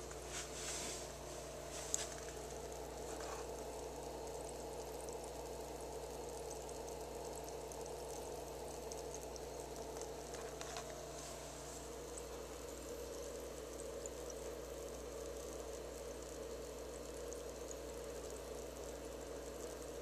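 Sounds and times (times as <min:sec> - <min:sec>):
gas bubbles fizzing and crackling: 0:00.0 - 0:20.0.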